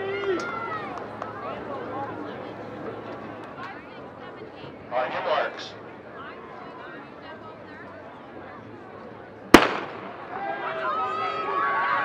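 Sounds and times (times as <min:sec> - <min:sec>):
spectators cheering and yelling: 0:00.0 - 0:03.8, 0:10.2 - 0:12.0.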